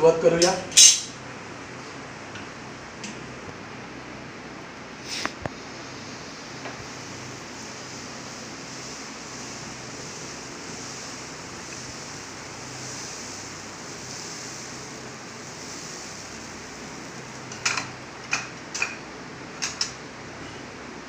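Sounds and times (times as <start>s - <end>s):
steady hiss: 4.2s - 21.0s.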